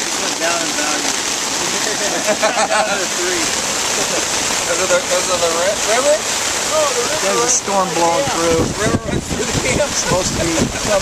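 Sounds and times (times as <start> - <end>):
heavy rain on a tarp: 0.0 - 11.0.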